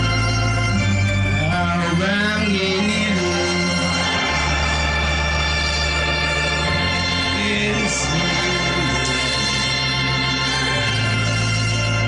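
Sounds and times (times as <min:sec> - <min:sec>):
electronic organ chords: 0:00.0 - 0:12.0
person singing: 0:01.4 - 0:05.1, 0:06.0 - 0:11.3.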